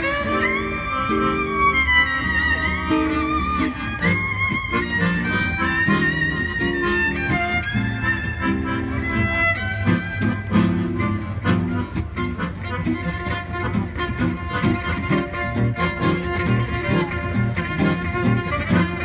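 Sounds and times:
accordion: 0:00.0 - 0:19.0
strummed guitar: 0:00.0 - 0:19.0
violin melody: 0:00.0 - 0:19.0.

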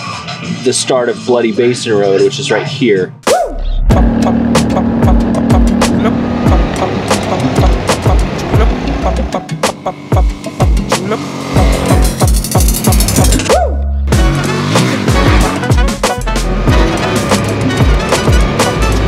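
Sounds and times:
electronic beat percussion: 0:03.2 - 0:19.0
deep sliding bass notes: 0:03.3 - 0:19.0.

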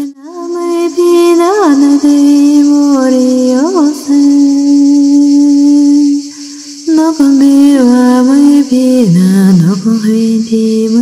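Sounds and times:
person chanting: 0:00.0 - 0:11.0.

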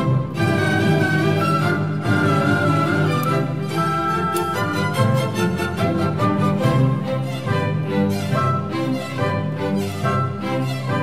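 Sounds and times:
bowed strings: 0:00.0 - 0:11.0
orchestra playing classical music: 0:00.0 - 0:11.0.

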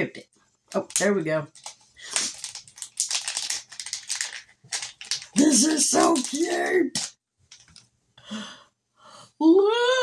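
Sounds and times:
wrapping crinkling and rustling: 0:00.7 - 0:07.9.

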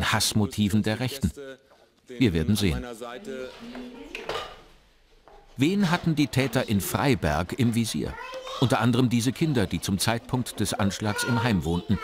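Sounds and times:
faint child's voice: 0:03.6 - 0:04.6, 0:08.1 - 0:08.7, 0:10.9 - 0:12.0.

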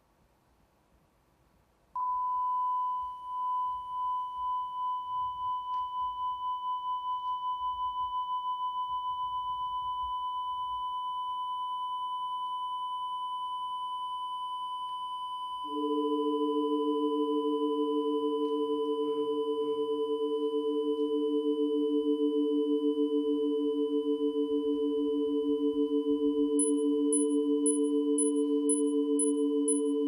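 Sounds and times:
faint higher tone: 0:02.0 - 0:30.0
high steady sine tone: 0:02.0 - 0:30.0
lower steady tones: 0:15.5 - 0:30.0.

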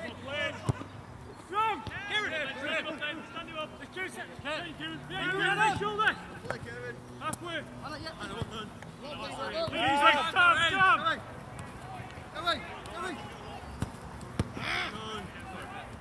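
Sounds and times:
footballers shouting: 0:00.0 - 0:16.0
football being kicked: 0:13.7 - 0:14.7.

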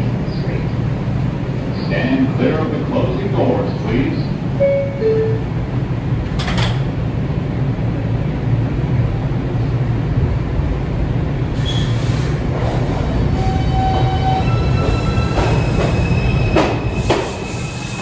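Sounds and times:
subway train rumble: 0:00.0 - 0:18.0.

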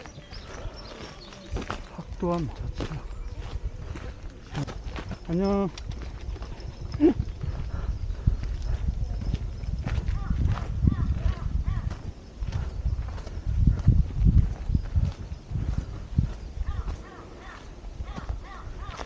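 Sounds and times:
footsteps on dirt and rock trail: 0:00.0 - 0:19.0.

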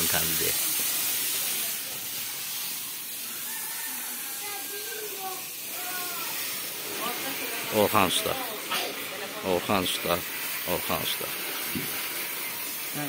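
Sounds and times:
water spraying from hose: 0:00.0 - 0:13.0.

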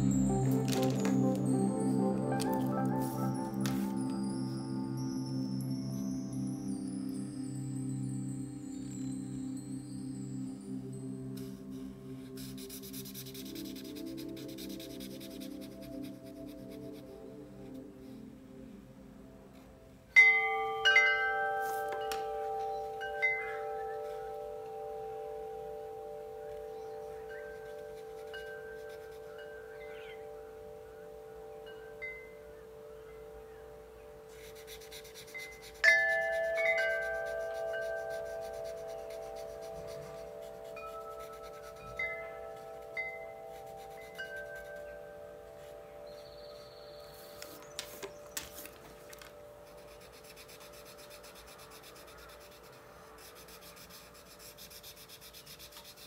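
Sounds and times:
chime tones ringing: 0:00.0 - 0:12.2, 0:20.1 - 0:34.3, 0:35.8 - 0:48.4.

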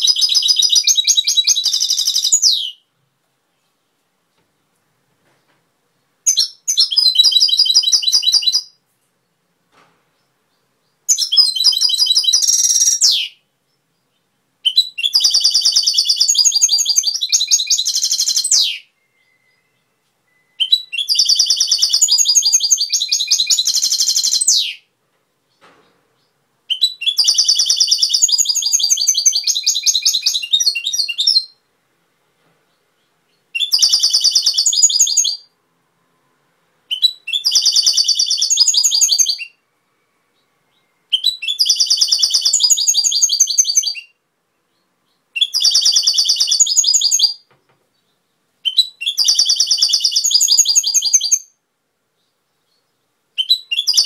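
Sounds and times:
bird trilling and twittering: 0:00.0 - 0:02.8, 0:06.2 - 0:08.8, 0:10.5 - 0:24.9, 0:26.2 - 0:31.6, 0:33.0 - 0:35.6, 0:36.9 - 0:39.6, 0:40.4 - 0:51.6, 0:52.2 - 0:54.0.

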